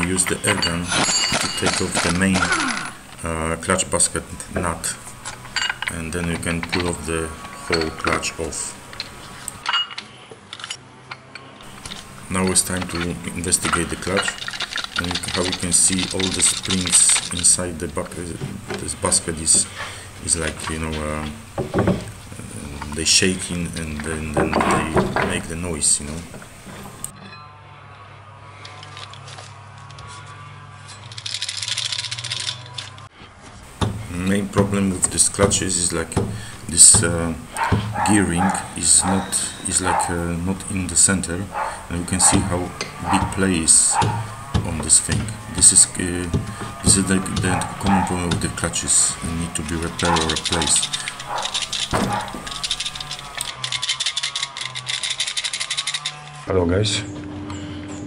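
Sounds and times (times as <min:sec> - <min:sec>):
clutch basket rattling: 0:11.6 - 0:25.5, 0:33.7 - 0:53.7.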